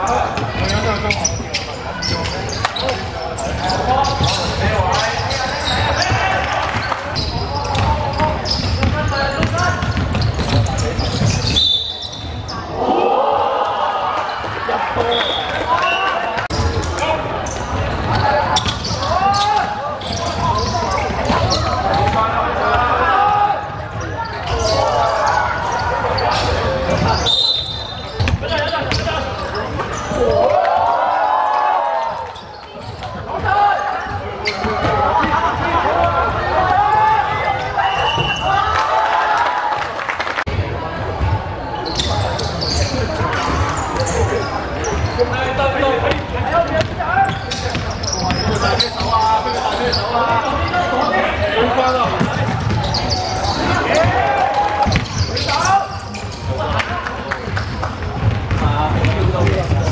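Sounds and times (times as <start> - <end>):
high squeaks or whistles: 10.4 - 12.6, 24.4 - 29.0.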